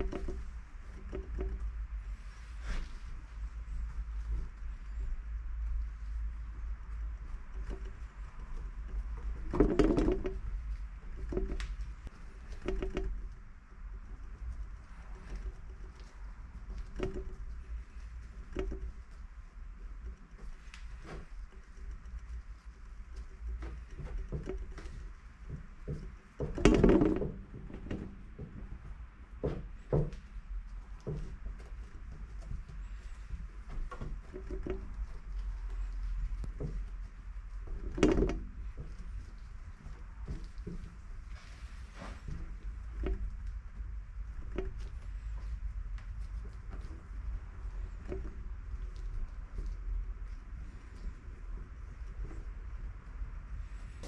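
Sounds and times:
steady low hum: 0.0 - 54.0
bumps on wooden workbench: 25.5 - 28.8, 29.4 - 30.3.

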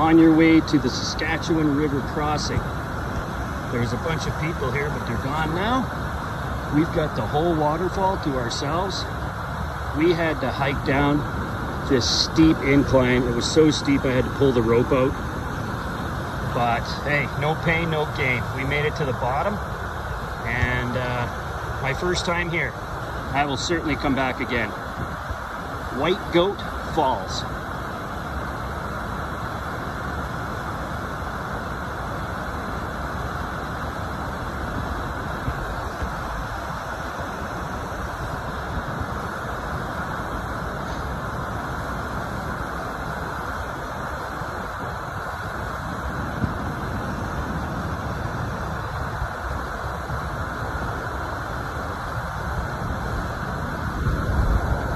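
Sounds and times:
waterfall rushing over rock: 0.0 - 54.9.

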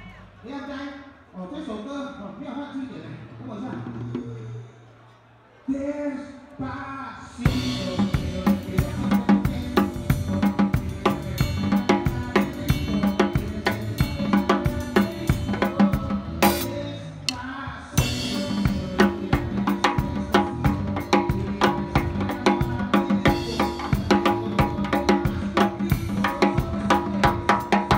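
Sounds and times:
drum kit groove: 7.4 - 27.9
electric bass: 7.5 - 17.4, 18.0 - 27.9.

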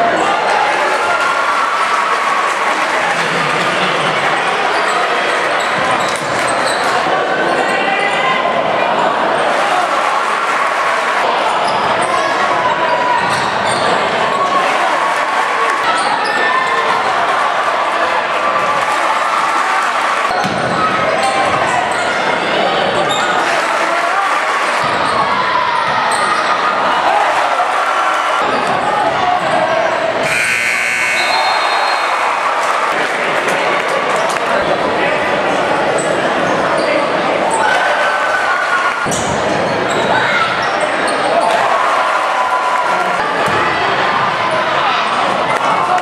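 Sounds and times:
crowd voices and cheering: 0.0 - 46.0
buzzer horn: 30.2 - 32.1.

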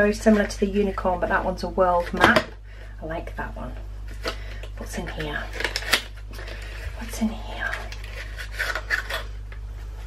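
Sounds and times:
cardboard rubbing and scraping: 8.0 - 9.3.

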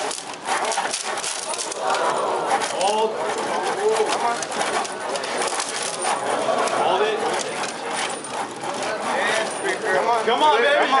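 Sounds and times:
wooden model tower rattling: 0.0 - 11.0
people's voices: 0.7 - 11.0.

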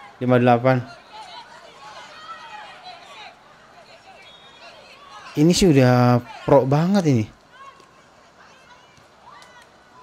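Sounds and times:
children shouting: 0.9 - 5.4.

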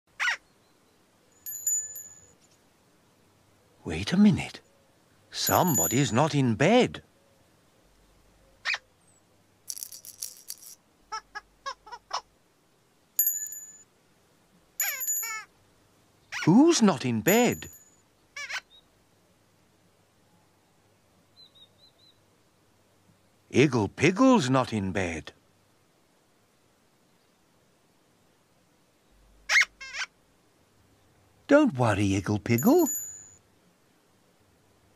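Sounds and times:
falling squeaky calls: 0.2 - 0.4, 18.4 - 18.8, 29.5 - 30.1
bell-like dings: 1.4 - 2.4, 5.4 - 6.2, 13.2 - 13.9, 14.8 - 15.5, 17.3 - 18.0, 32.6 - 33.4
rattle of clicks: 9.7 - 10.8.

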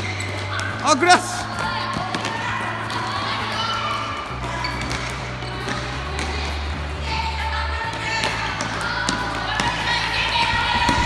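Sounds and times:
background music with bass: 0.0 - 11.0
balls bouncing on hard floor: 0.0 - 11.0.

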